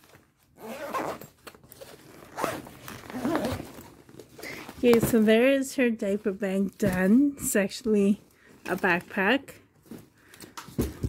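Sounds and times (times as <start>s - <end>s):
zipper being pulled shut: 0.6s - 3.9s.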